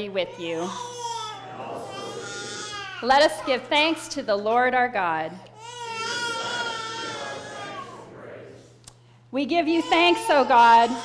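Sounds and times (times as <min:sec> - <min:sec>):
infant crying: 0:00.3 - 0:03.6, 0:05.6 - 0:08.0, 0:09.7 - 0:11.0.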